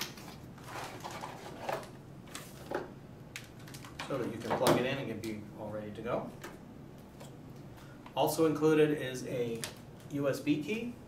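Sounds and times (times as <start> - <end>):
plastic bag rustling: 0.2 - 2.7.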